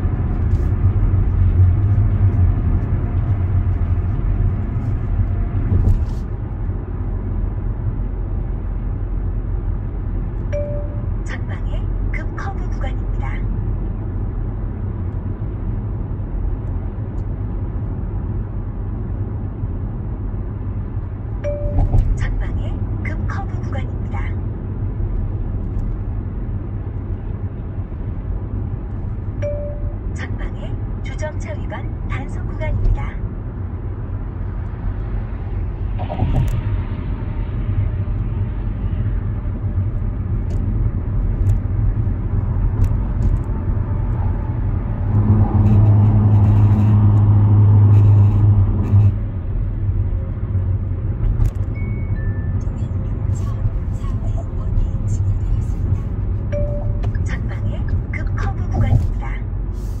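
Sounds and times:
car cabin road and engine noise: 0.0s - 60.0s
loud low drone: 35.0s - 50.0s.

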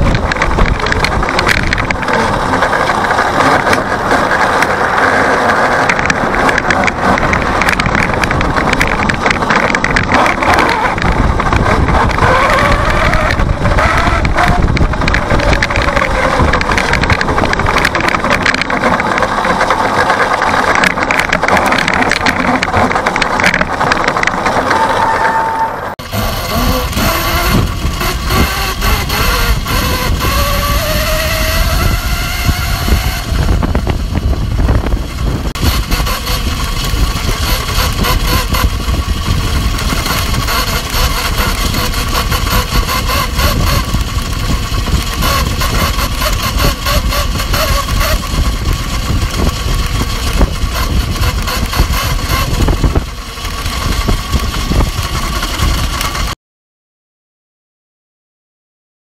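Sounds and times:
heavy wind rumble: 0.0s - 25.0s, 25.9s - 56.4s.

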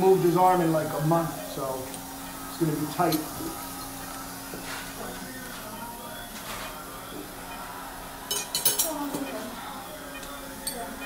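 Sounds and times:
metal instruments clinking: 8.3s - 9.3s.

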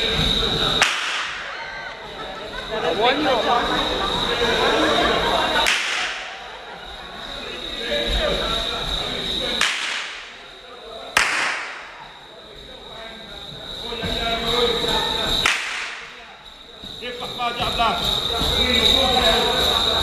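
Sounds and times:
whip cracking: 0.8s - 1.6s, 5.6s - 6.4s, 9.6s - 10.4s, 11.2s - 12.0s, 15.4s - 16.2s.

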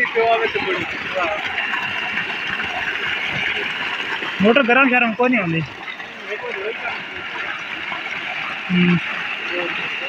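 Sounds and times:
water gushing from pipe: 0.0s - 10.0s
water splashing into basin: 0.0s - 10.0s.

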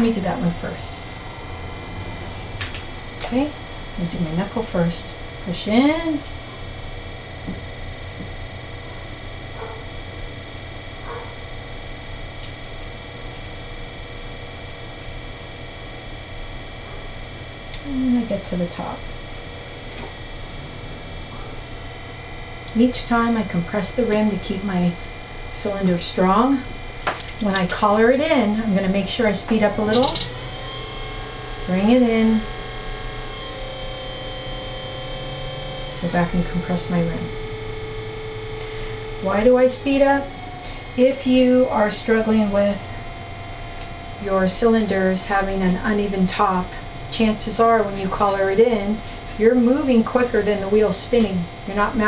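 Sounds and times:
potter's wheel humming: 0.0s - 52.0s.

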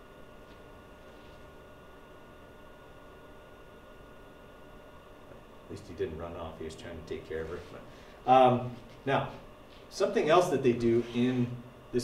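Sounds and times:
faint room tone hiss: 0.0s - 12.0s.

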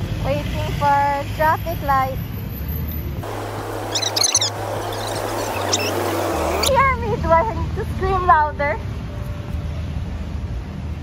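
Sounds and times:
street traffic hum: 0.0s - 11.0s
high bird-like chirps: 3.3s - 6.8s.

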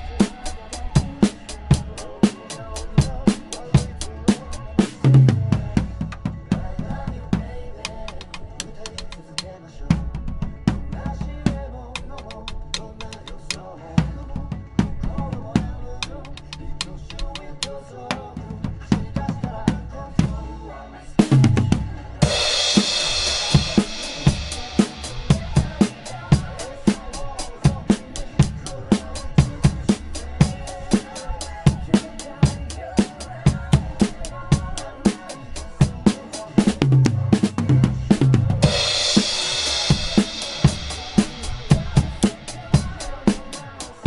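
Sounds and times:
drum kit groove: 0.0s - 20.6s, 21.2s - 44.0s
backing track music: 0.0s - 44.0s.

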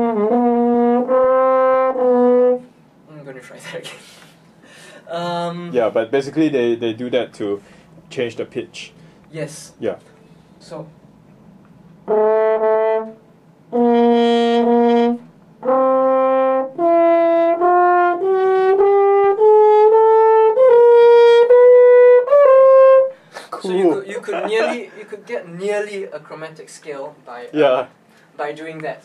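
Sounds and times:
french horn notes: 0.0s - 2.8s, 12.0s - 23.2s.

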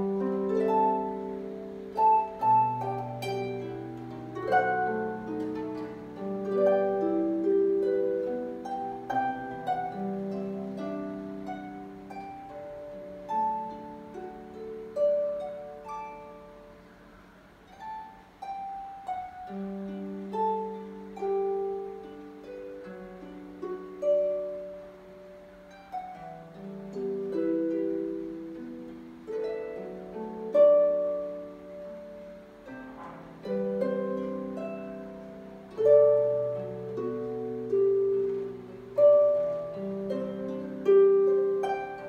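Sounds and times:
harp playing slow melody: 0.0s - 42.0s.

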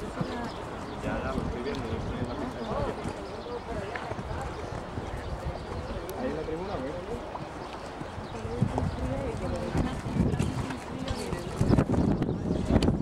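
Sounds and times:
people talking: 0.0s - 7.5s, 8.2s - 13.0s.

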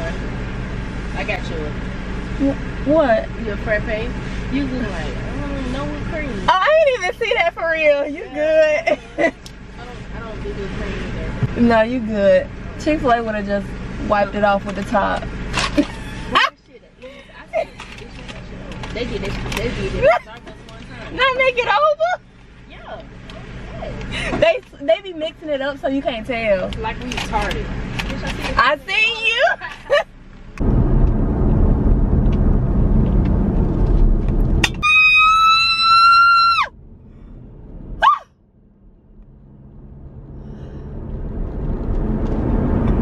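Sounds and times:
loud low rumble: 30.1s - 43.0s
short yelp: 38.0s - 38.3s.

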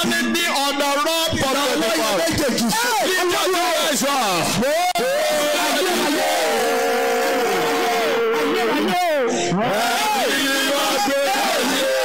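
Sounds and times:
music: 7.3s - 12.0s.

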